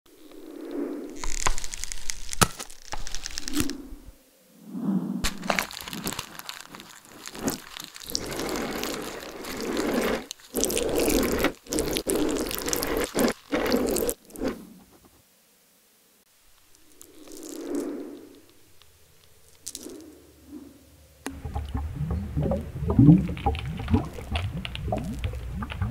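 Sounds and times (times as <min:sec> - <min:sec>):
ballpoint pen scratching on paper: 0:09.5 - 0:14.6.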